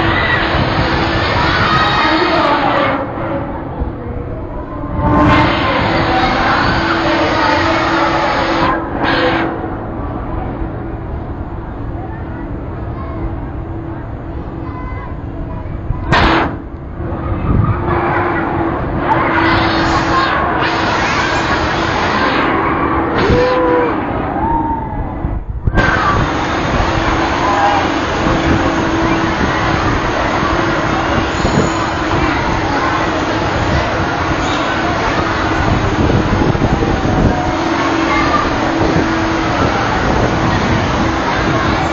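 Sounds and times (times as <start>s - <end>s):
amusement ride rushing: 0.0s - 41.9s
steady hum: 0.0s - 41.9s.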